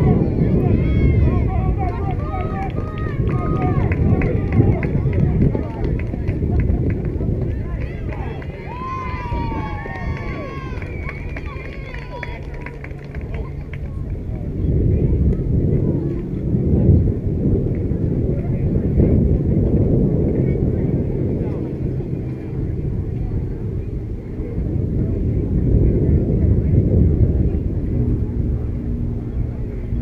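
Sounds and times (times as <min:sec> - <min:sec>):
steady low hum: 0:00.0 - 0:30.0
wind buffeting microphone: 0:00.0 - 0:30.0.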